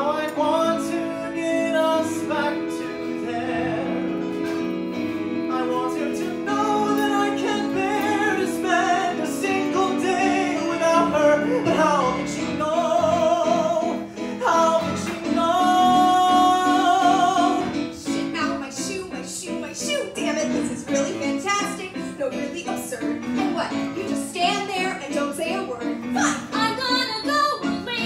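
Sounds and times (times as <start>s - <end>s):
man singing ballad with vibrato: 0.0s - 4.5s, 5.5s - 18.0s
stage keyboard: 0.0s - 28.0s.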